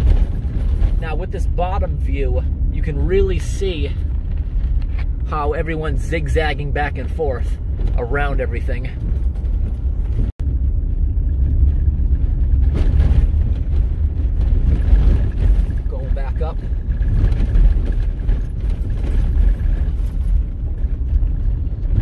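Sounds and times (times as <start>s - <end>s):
vehicle rumbling on dirt road: 0.0s - 22.0s.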